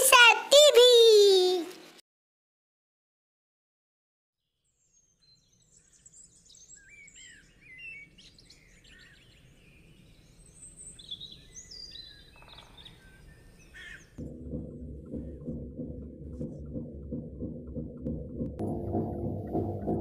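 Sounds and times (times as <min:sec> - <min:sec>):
songbirds chirping: 0:04.7 - 0:14.2
music: 0:14.2 - 0:20.0.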